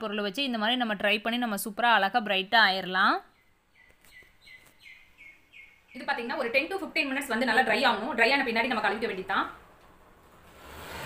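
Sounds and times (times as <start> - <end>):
faint bird chirping: 2.7 - 7.9.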